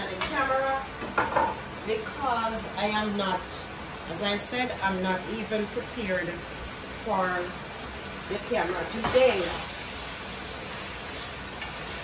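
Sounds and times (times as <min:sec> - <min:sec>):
chicken sizzling in a pan: 0:08.2 - 0:12.0.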